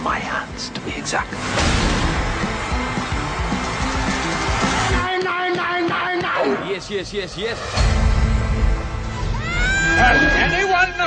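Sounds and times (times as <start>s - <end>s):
dense film soundtrack music: 0.0s - 11.0s.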